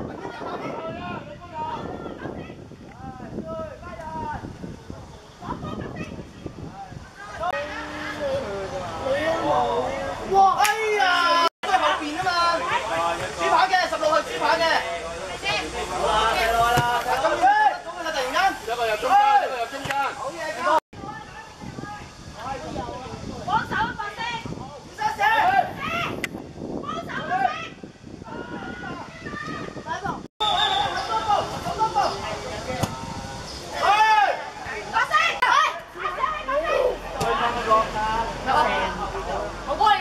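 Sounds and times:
players and spectators shouting: 0:07.2 - 0:14.8, 0:33.6 - 0:39.0
loud drawn-out shout: 0:33.7 - 0:37.5.

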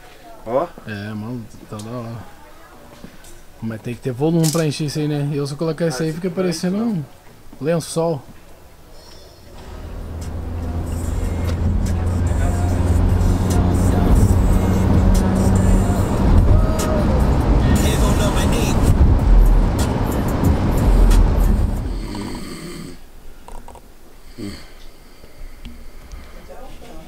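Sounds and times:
music with heavy bass line: 0:09.6 - 0:22.1.

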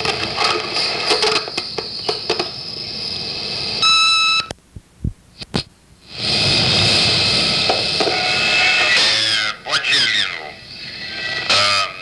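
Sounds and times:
line and tape hiss: 0:00.0 - 0:12.0.

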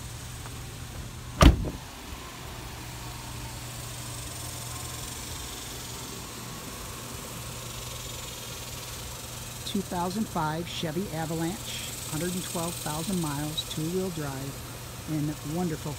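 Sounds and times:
truck door slamming: 0:01.4 - 0:01.9.

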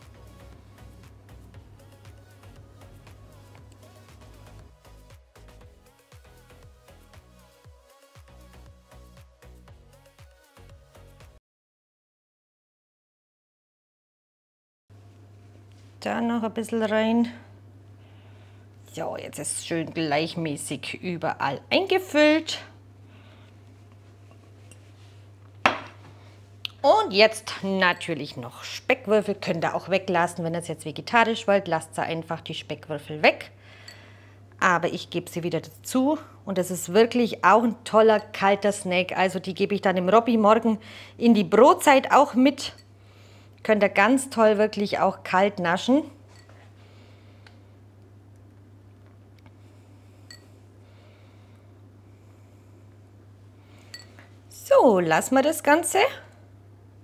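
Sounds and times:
faint low hum: 0:15.0 - 0:57.0
jug knocking on worktop: 0:25.6 - 0:26.1.

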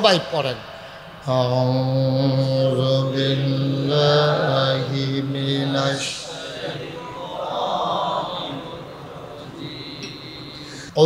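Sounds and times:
man chanting through loudspeaker: 0:00.0 - 0:11.0.

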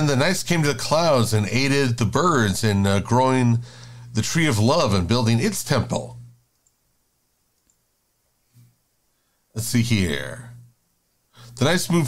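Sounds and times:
man's voice: 0:00.0 - 0:06.2, 0:11.6 - 0:12.0
faint clicks: 0:06.5 - 0:06.8, 0:07.5 - 0:07.8.

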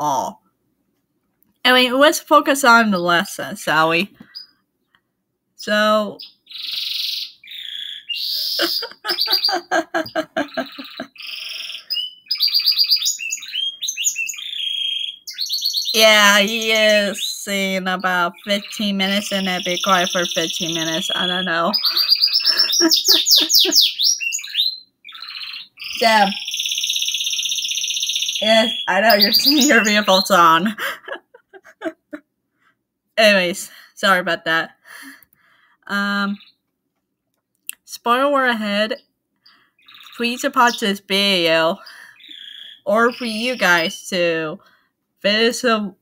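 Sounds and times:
person's voice: 0:00.0 - 0:00.4, 0:01.7 - 0:04.2, 0:05.6 - 0:06.2, 0:16.0 - 0:22.8, 0:26.0 - 0:26.4, 0:28.4 - 0:32.1, 0:33.2 - 0:35.1, 0:37.7 - 0:39.0, 0:40.2 - 0:42.1, 0:42.9 - 0:44.6
bird singing high trills: 0:06.2 - 0:17.2, 0:18.1 - 0:30.7, 0:42.1 - 0:43.9.

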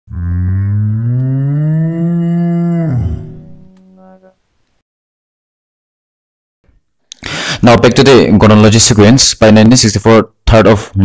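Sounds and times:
cow mooing: 0:00.1 - 0:04.4.

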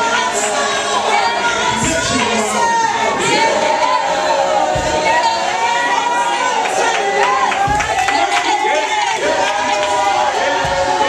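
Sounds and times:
crowd shouting and crying out: 0:00.0 - 0:11.0.

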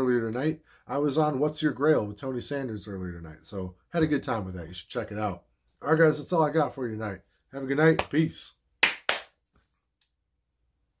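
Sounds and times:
sharp hand clap: 0:07.9 - 0:09.4.

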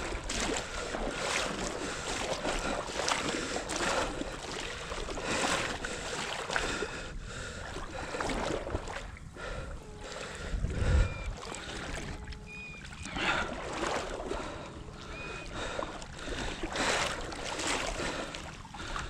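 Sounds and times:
water sloshing around wading legs: 0:00.0 - 0:19.0.

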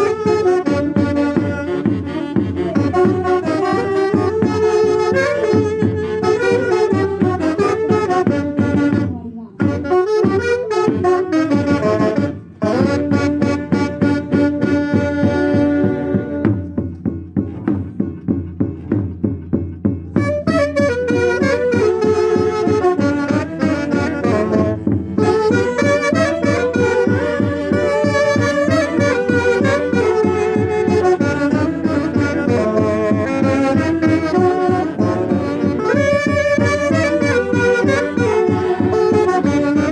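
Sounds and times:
saxophones playing in harmony: 0:00.0 - 0:16.8, 0:20.2 - 0:39.9
steady beat: 0:00.0 - 0:39.9.

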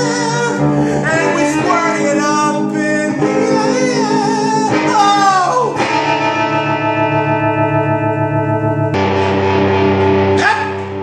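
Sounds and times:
electric guitar playing: 0:00.0 - 0:11.0.

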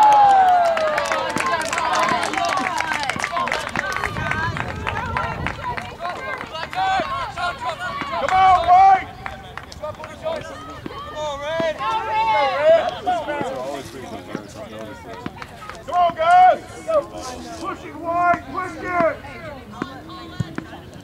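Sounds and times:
people shouting and calling out: 0:00.0 - 0:21.0.

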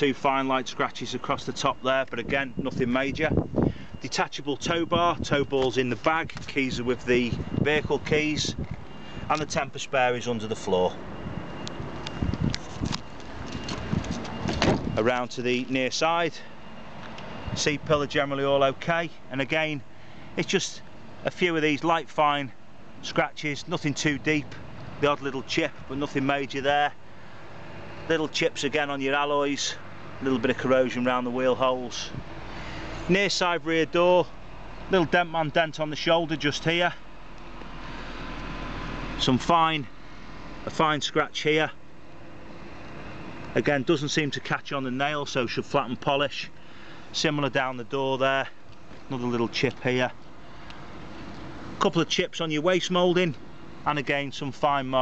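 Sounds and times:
steady background noise: 0:00.0 - 0:55.0
footsteps on tarmac: 0:05.3 - 0:09.6, 0:10.6 - 0:15.8, 0:16.4 - 0:18.0, 0:48.5 - 0:51.9
handheld camera knocks and rustle: 0:12.3 - 0:14.9.

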